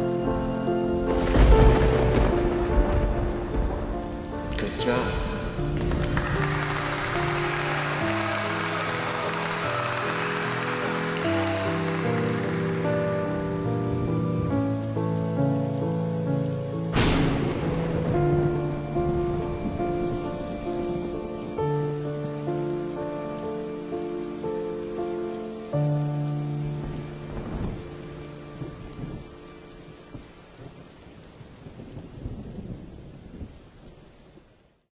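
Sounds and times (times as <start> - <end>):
music of held chords: 0.0 - 30.7
steady rain: 0.0 - 34.9
low thunder rumbles: 0.9 - 8.6, 16.9 - 24.2, 26.0 - 34.4.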